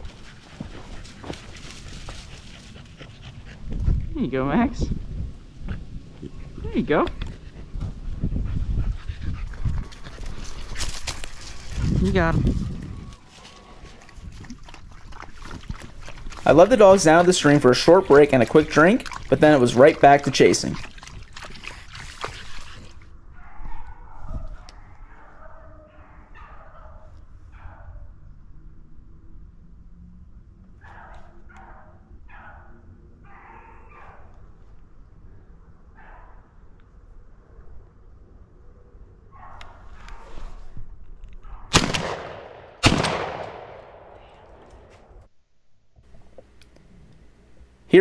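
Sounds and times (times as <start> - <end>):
shotgun shots with echo: 41.7 - 44.6.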